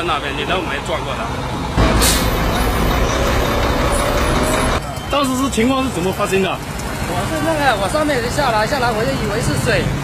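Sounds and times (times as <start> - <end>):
heavy truck rumbling: 0.0 - 8.6.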